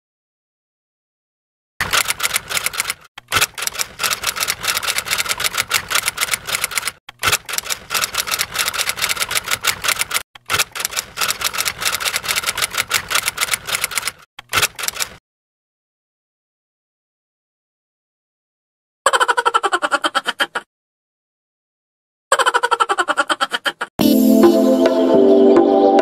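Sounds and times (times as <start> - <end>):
typewriter keystroke clicks: 1.8 - 15.2.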